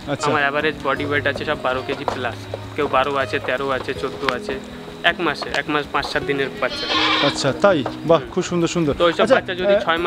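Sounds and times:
people talking: 0.0s - 10.0s
goats bleating: 6.6s - 7.6s.

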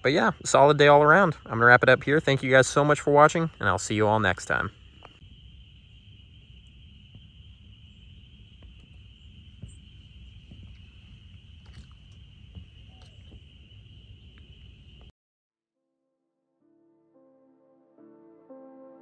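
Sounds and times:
low rumble: 4.5s - 15.1s.

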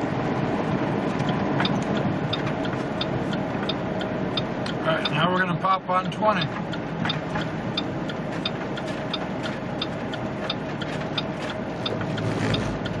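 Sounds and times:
road noise: 0.0s - 13.0s
truck engine drone: 0.0s - 13.0s
light regular ticking: 1.2s - 13.0s.

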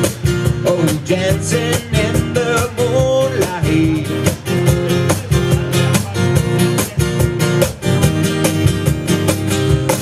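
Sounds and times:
cajon and cymbal beat: 0.0s - 10.0s
strummed acoustic guitar: 0.0s - 10.0s.

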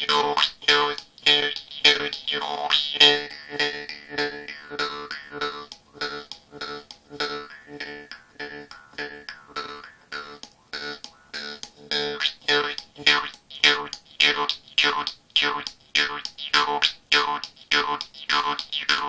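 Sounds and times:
jaw harp plucks: 0.0s - 19.0s.

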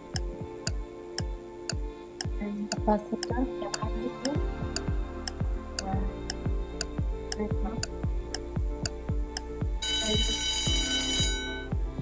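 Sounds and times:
background music with steady beat: 0.0s - 12.0s
alarm clock ringing: 9.8s - 11.7s.

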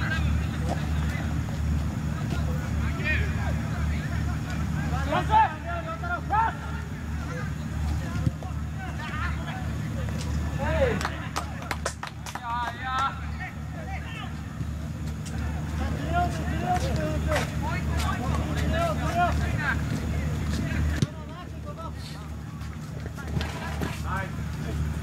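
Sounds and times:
players shouting calls: 0.0s - 25.0s.

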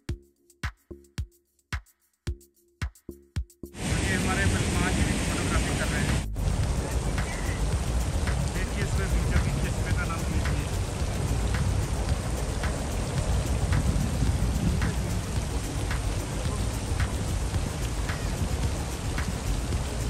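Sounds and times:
fountain jets splashing water: 3.8s - 20.0s.

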